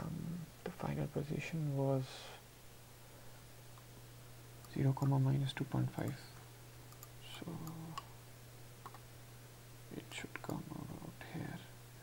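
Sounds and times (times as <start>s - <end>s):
steady low hum: 0.0s - 12.0s
soft half-whispered speech: 9.9s - 11.8s.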